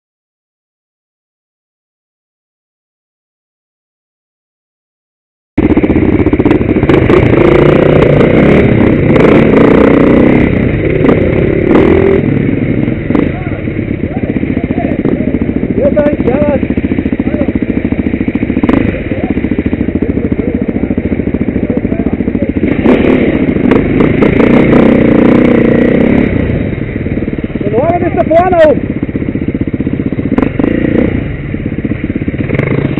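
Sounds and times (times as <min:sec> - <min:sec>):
dirt bike engines revving: 0:05.6 - 0:32.9.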